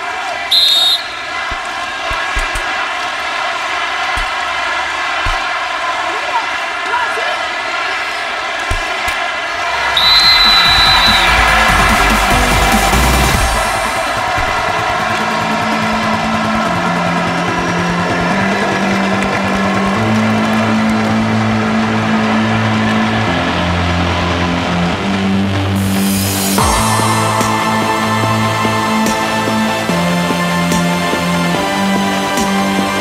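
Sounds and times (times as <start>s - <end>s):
arena crowd cheering: 0.0s - 33.0s.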